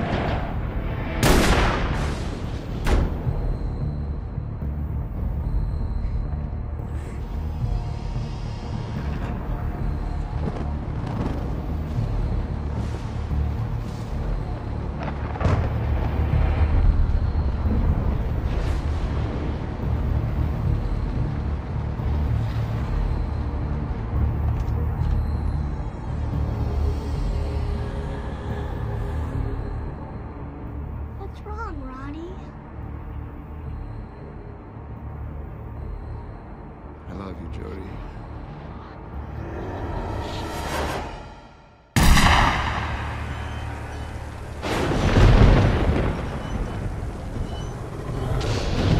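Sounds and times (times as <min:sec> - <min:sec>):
low rumbling drone: 0:00.0 - 0:31.2, 0:32.4 - 0:48.9
gunshot with long echo: 0:01.2 - 0:03.1, 0:42.0 - 0:43.9
low rumble: 0:38.2 - 0:48.9.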